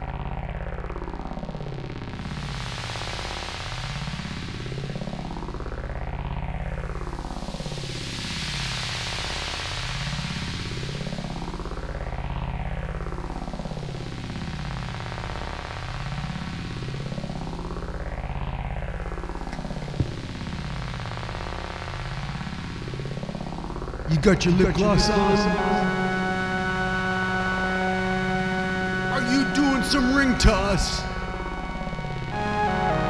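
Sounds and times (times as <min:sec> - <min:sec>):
synthesizer drone: 0:16.8 - 0:21.4, 0:22.8 - 0:33.0.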